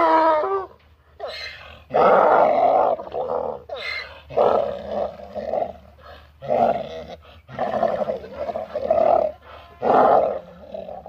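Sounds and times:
donkey braying: 0:00.0 - 0:11.0.

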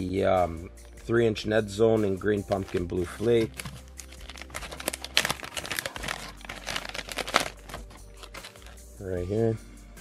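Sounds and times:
plastic packaging crinkling: 0:02.5 - 0:08.9.

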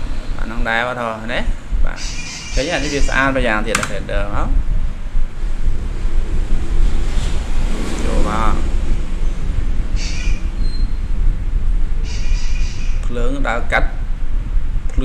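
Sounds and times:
low rumble and hiss: 0:00.0 - 0:15.0.

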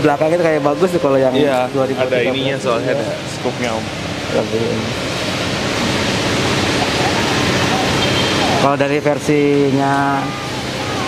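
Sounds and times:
loud rushing hiss: 0:01.5 - 0:11.0.

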